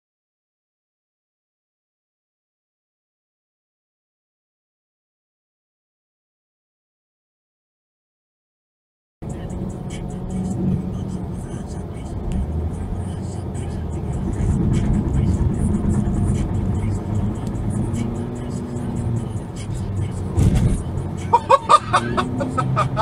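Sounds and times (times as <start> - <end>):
car engine and road rumble: 9.2 - 23.0
people talking: 9.2 - 23.0
people laughing: 21.2 - 23.0.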